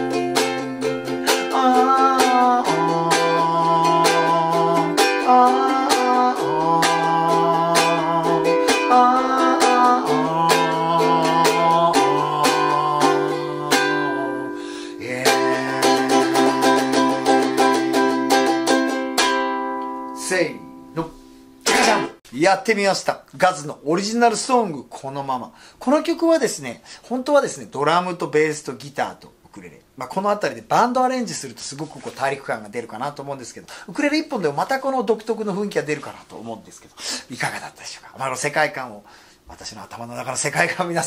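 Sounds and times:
ukulele strumming: 0.0s - 22.2s
man singing: 0.8s - 18.0s, 21.7s - 22.2s.

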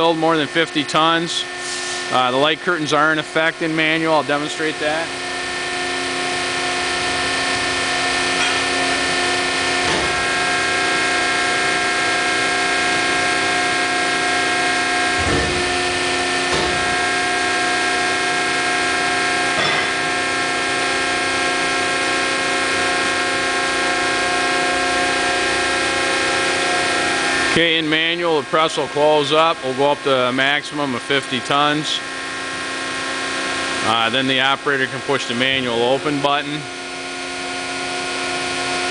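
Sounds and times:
hydraulic power unit whining hum: 0.0s - 38.9s.

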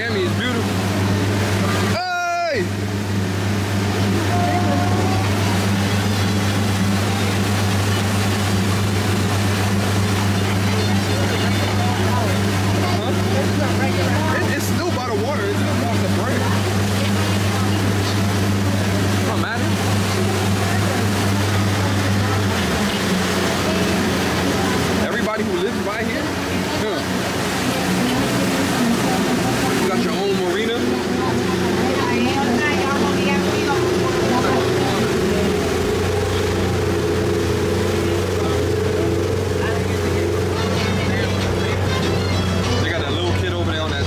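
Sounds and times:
motorboat engine humming: 0.0s - 44.0s
water rushing: 0.0s - 44.0s
wind: 0.0s - 44.0s.

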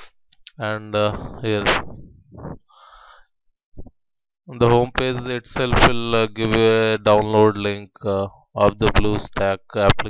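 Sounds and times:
man saying uh: 0.6s - 1.9s
soft breath: 2.1s - 3.4s.

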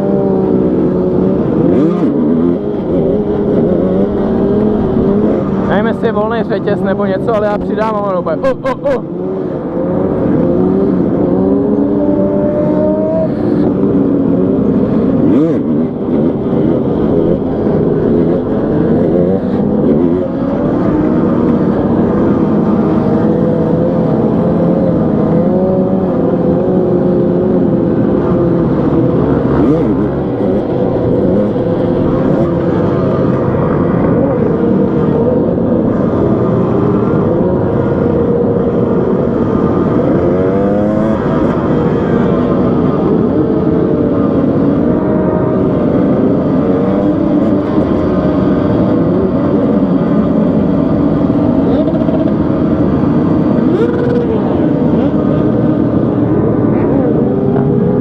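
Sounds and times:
group of motorcycles: 0.0s - 58.0s
motorcycle engine revving: 0.0s - 58.0s.

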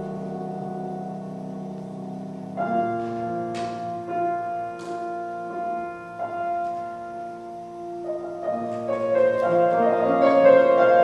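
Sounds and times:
piano chord ringing: 0.0s - 11.0s.

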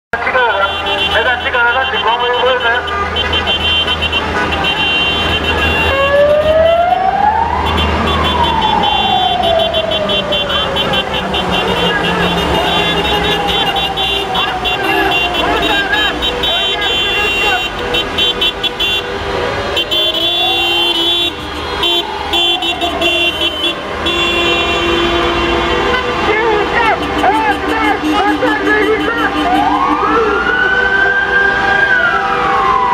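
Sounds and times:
vehicle horns honking: 0.1s - 30.8s
traffic rumble: 0.1s - 32.9s
siren wailing: 4.7s - 17.9s, 19.0s - 24.0s, 25.0s - 32.9s.

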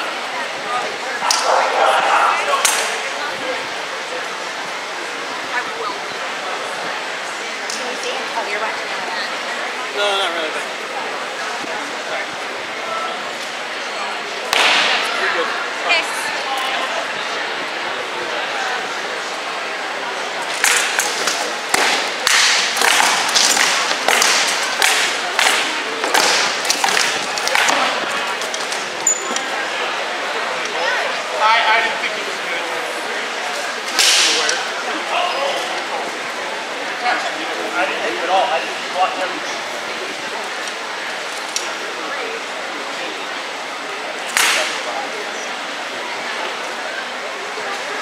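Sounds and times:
murmur of spectators: 0.0s - 48.0s.

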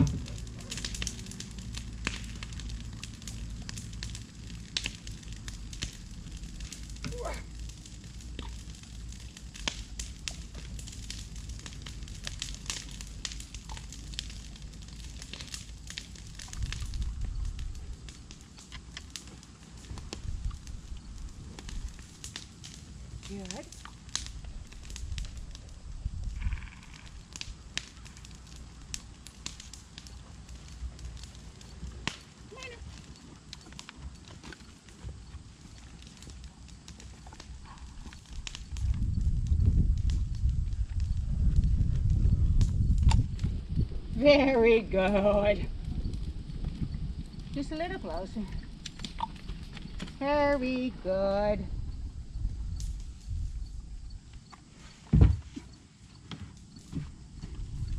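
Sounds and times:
low rumble: 0.0s - 18.5s, 37.5s - 54.3s
fire crackling and popping: 0.0s - 57.9s.

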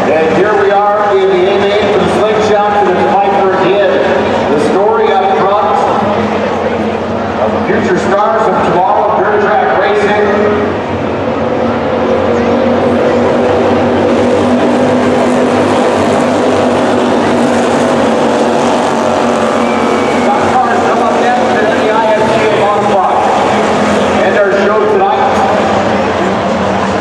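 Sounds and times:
race car engines: 0.0s - 27.0s.

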